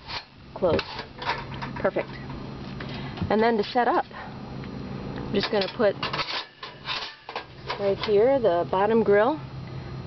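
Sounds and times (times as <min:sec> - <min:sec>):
wire grill scraping metal: 0:00.0 - 0:03.9, 0:05.4 - 0:08.6.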